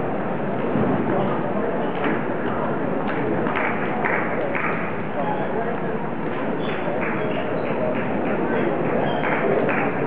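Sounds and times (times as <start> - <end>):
murmur of a hall: 0.0 - 10.0.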